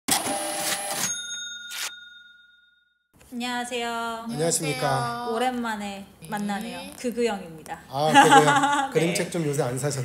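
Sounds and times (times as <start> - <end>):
bell ding ringing: 1.0 - 3.0.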